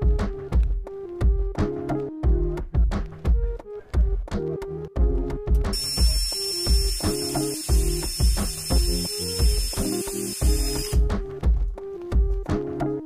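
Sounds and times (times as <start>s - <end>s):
background music with steady beat: 0.0s - 13.0s
drill boring into steel tube: 5.8s - 11.0s.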